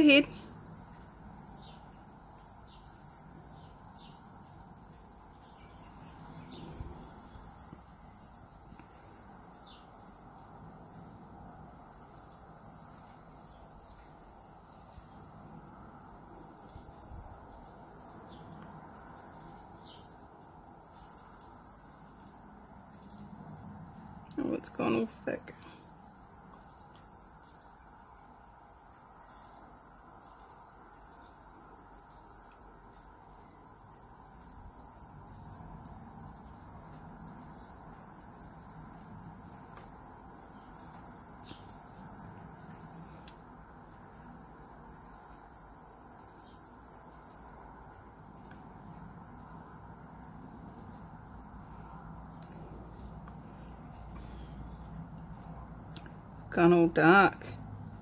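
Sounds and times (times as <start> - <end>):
high-pitched insect chirping: 0.0 - 58.0.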